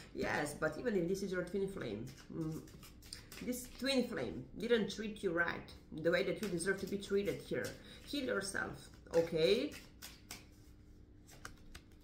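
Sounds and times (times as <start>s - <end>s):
cards being shuffled: 1.3s - 4.2s, 6.4s - 12.0s.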